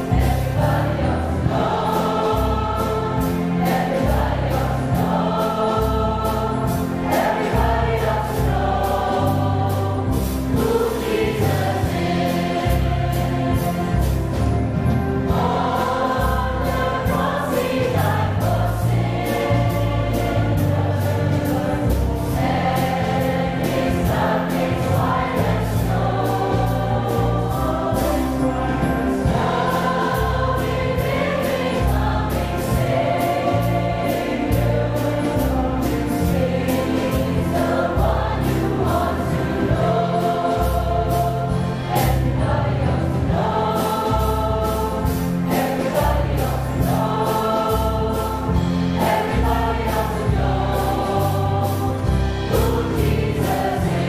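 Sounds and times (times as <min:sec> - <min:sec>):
choir singing gospel song: 0:00.0 - 0:54.0.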